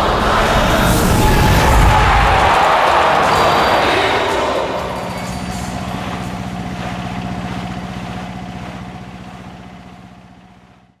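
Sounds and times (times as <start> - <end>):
engine idling with pulsing hum: 4.7 - 11.0.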